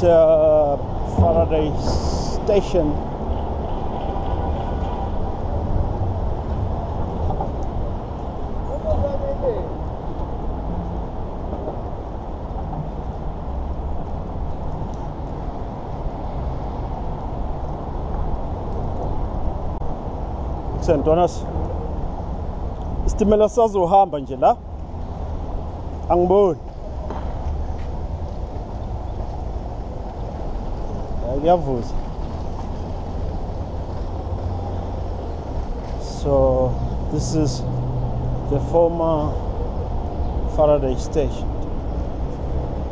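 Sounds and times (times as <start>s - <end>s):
low rumble of freeway traffic: 0.0s - 42.9s.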